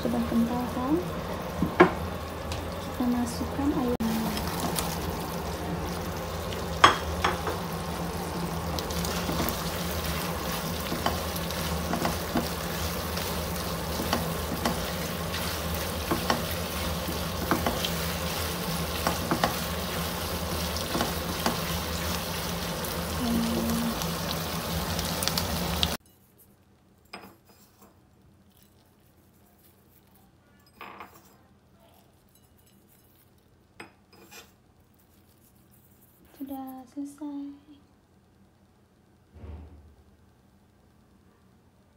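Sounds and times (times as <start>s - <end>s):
sauce sizzling in a frying pan: 0.0s - 26.0s
spatula clicking and scraping pan: 6.4s - 23.0s.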